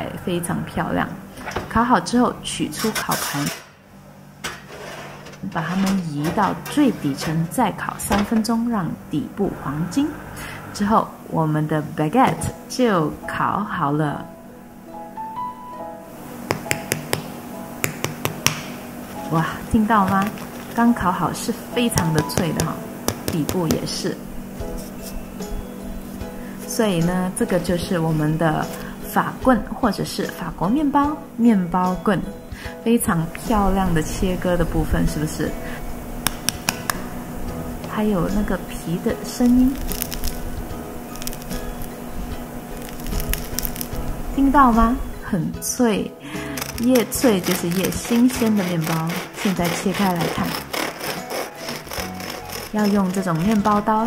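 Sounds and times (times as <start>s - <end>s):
fingertip tapping bread crust: 16.4s - 18.7s
bread crust crackling: 19.9s - 21.0s, 39.4s - 44.1s, 46.5s - 54.0s.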